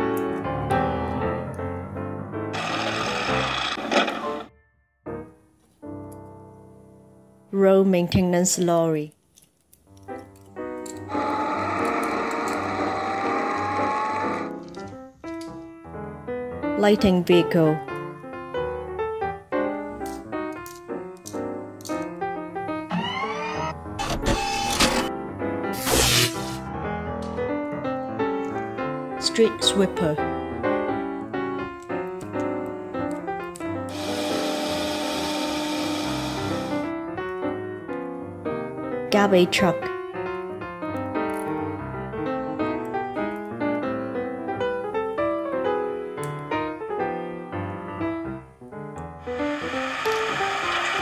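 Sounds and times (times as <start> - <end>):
light background music: 0.0 - 51.0
street sweeper rushing noise: 49.2 - 51.0
machinery whirring clatter with whine: 49.3 - 51.0.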